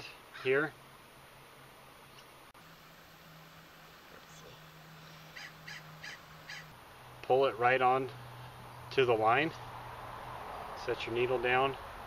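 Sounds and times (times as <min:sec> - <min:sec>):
bird calling: 0:04.2 - 0:06.8.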